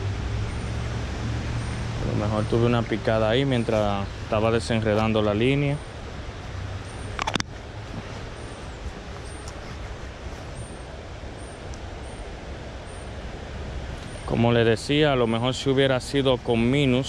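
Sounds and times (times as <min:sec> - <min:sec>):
flowing river: 0:00.0 - 0:17.0.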